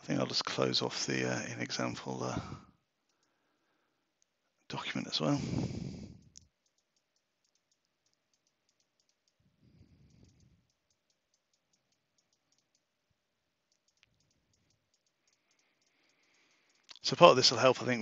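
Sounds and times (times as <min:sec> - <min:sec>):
computer clicking: 0:03.0 - 0:03.4, 0:06.1 - 0:17.0.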